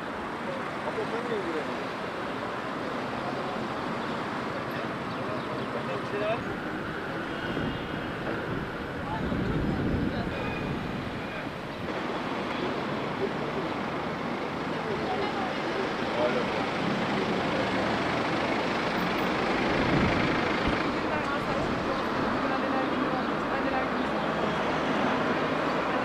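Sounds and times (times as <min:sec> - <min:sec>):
cars idling and passing: 0:00.0 - 0:26.0
faint indistinct voices: 0:00.0 - 0:26.0.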